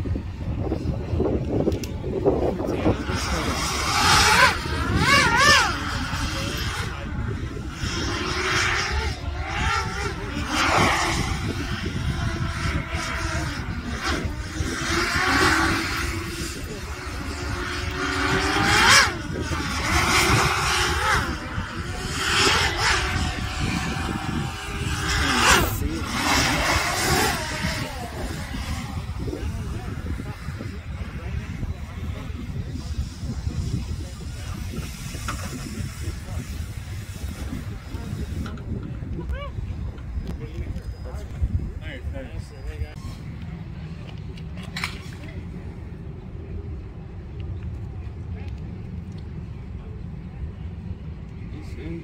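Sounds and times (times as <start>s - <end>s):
drone motor and propeller whine: 0.0s - 52.0s
wind rumble on microphone: 0.0s - 52.0s.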